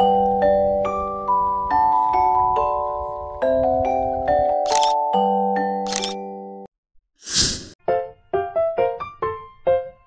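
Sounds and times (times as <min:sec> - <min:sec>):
camera shutter clicks: 0:04.7 - 0:05.0, 0:05.9 - 0:06.2
piano notes: 0:07.8 - 0:10.0.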